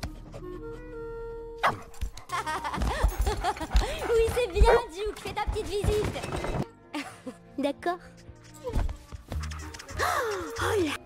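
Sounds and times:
film soundtrack music: 0.0s - 11.0s.

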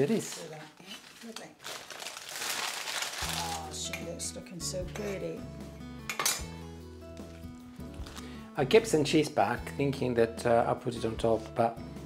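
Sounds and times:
parchment paper crumpling: 0.0s - 3.9s.

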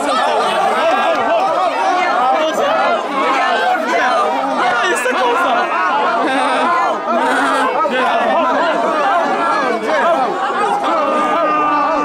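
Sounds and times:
young people talking and shouting: 0.0s - 12.0s.

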